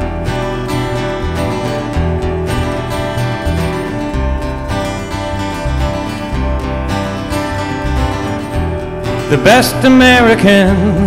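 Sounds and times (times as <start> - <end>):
acoustic guitar strumming: 0.0 - 11.0
bass guitar low notes: 0.0 - 11.0.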